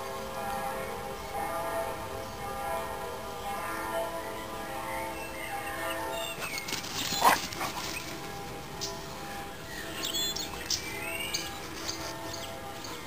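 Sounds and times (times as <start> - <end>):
dog barking: 7.2 - 7.8.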